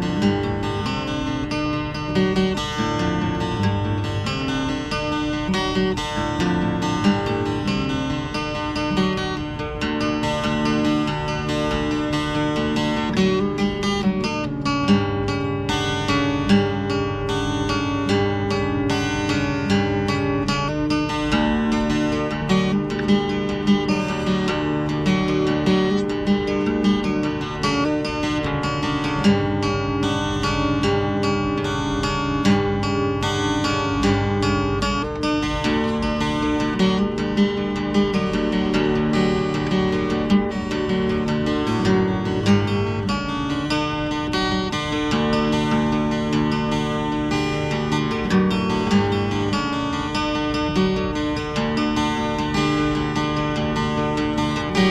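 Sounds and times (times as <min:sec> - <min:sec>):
acoustic guitar fingerpicking: 0:00.0 - 0:54.9.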